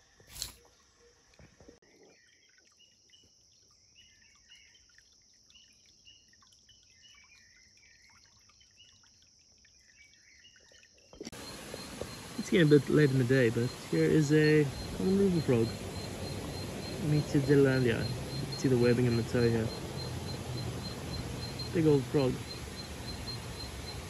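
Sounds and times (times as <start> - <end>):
night insects chorus: 11.2 - 24.0
small animals chirping: 11.3 - 24.0.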